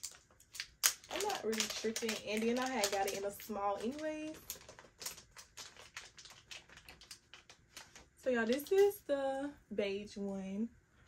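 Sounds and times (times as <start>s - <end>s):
plastic packaging crinkling: 0.0s - 8.9s.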